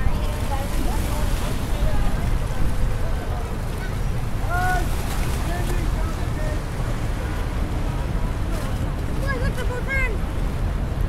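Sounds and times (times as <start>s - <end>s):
passers-by's voices: 0.0s - 11.0s
river water against pier: 0.0s - 11.0s
wind on microphone: 0.0s - 11.0s.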